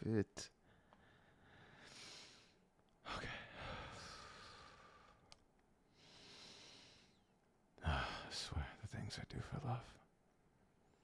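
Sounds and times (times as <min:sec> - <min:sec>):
man speaking quietly: 0:08.3 - 0:10.0.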